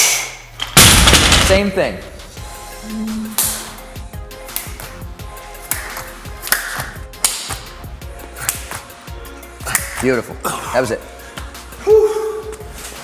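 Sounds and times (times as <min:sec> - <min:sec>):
background music: 0:00.4 - 0:13.0
hand claps and palm slaps: 0:04.4 - 0:09.0, 0:09.6 - 0:10.0.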